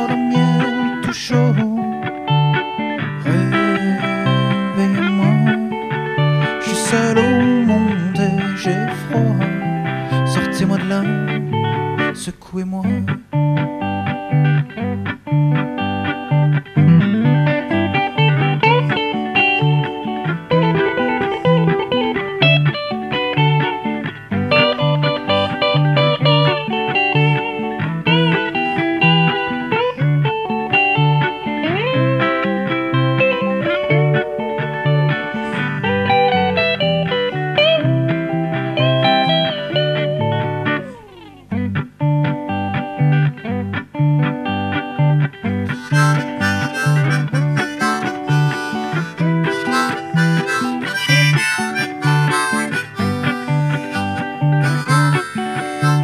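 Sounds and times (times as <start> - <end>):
fingerpicked guitar: 0.0 - 56.0
harmonica: 45.7 - 56.0.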